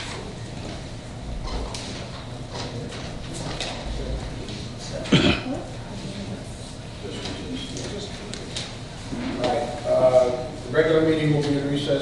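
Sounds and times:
person coughing: 5.1s - 5.6s.

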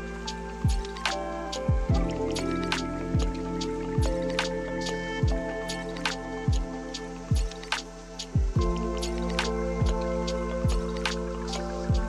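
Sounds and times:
keyboard chords: 0.0s - 12.0s
deep kick drum: 0.6s - 1.0s, 1.7s - 2.3s, 3.2s - 3.4s, 4.0s - 4.3s, 5.2s - 5.6s, 6.5s - 6.7s, 7.3s - 7.6s, 8.4s - 9.0s, 9.8s - 11.0s.

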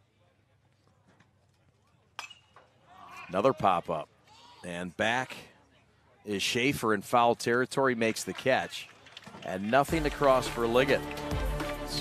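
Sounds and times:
baseball bat hitting ball: 2.2s - 2.7s.

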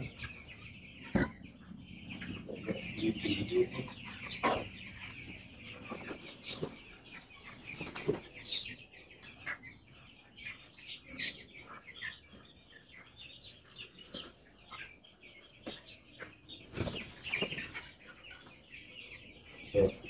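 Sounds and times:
chicks peeping and chirping: 0.0s - 20.0s.

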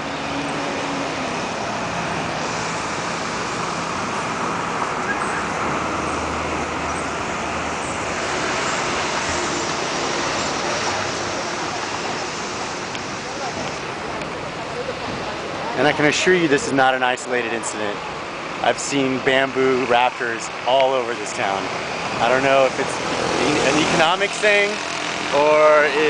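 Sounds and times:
street traffic: 0.0s - 26.0s.

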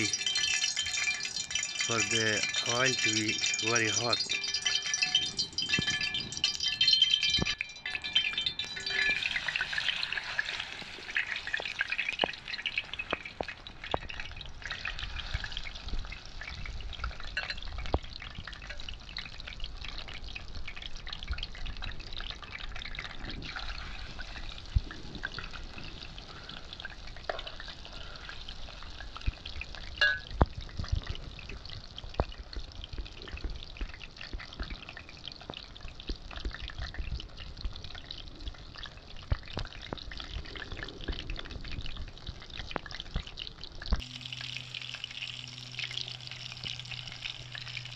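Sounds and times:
fish frying in hot oil: 0.0s - 47.9s.

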